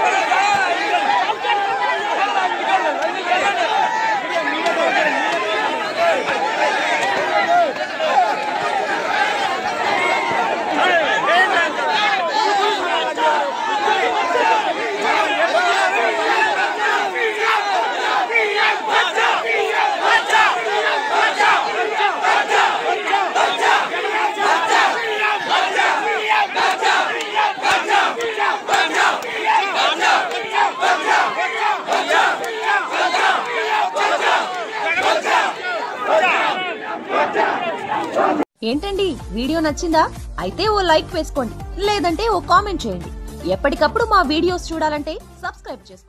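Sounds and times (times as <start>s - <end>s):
crowd of men shouting: 0.0s - 38.5s.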